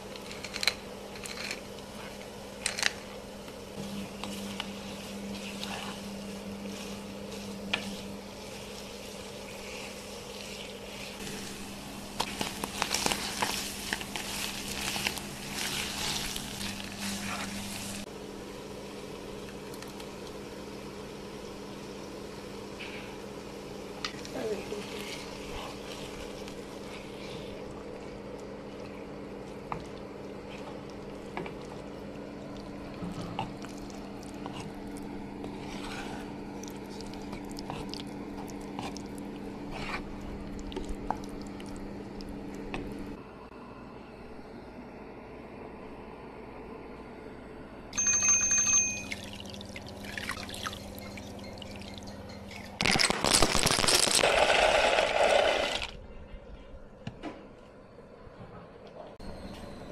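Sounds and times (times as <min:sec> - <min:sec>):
steady low hum: 0:00.0 - 0:48.2
spatula stirring sauce: 0:03.8 - 0:11.5, 0:35.4 - 0:40.2
onions sizzling in a pan: 0:03.8 - 0:18.1.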